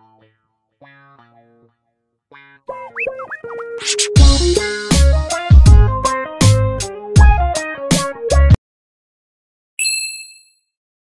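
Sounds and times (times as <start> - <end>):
high bell-like ding: 9.8 - 10.7.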